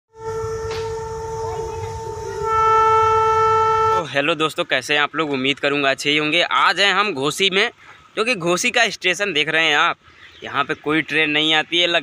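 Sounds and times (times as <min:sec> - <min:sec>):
railbus horn note: 0:00.1 - 0:04.3
railbus running rumble: 0:00.1 - 0:12.0.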